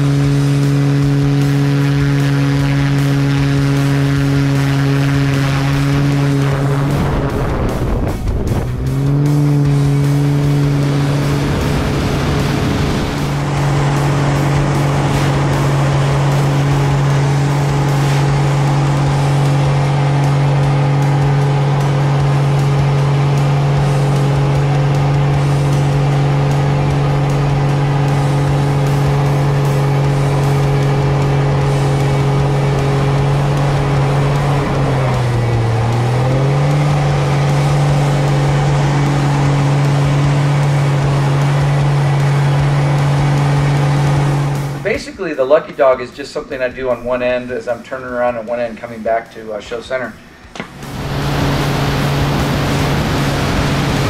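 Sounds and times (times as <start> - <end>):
plane engine and propeller drone: 0.0 - 54.0.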